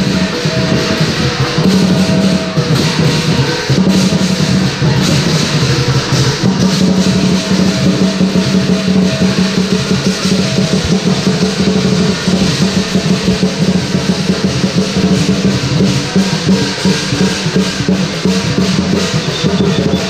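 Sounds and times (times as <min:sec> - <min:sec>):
cymbals clashing: 0:00.0 - 0:20.0
gong ringing: 0:00.0 - 0:20.0
large drum beaten fast: 0:00.0 - 0:20.0.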